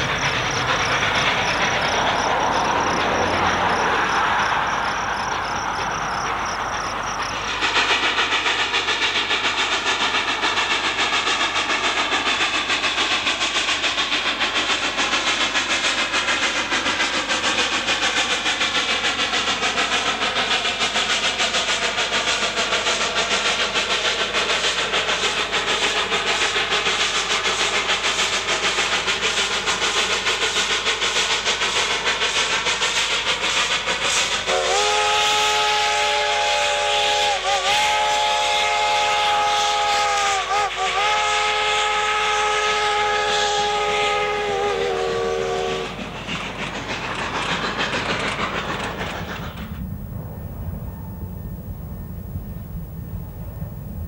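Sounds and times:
steam locomotive exhaust: 0.0s - 54.0s
steam whistle blast: 34.2s - 46.0s.

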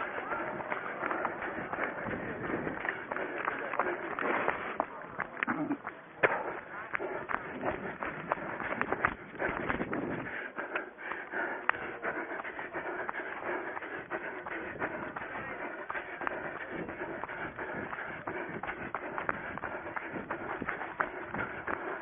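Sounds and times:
running footsteps on grass: 0.0s - 22.0s.

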